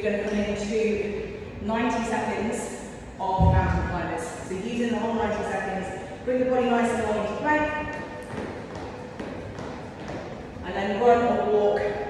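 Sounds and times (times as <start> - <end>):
trainers tapping on tiled floor: 8.2 - 10.3.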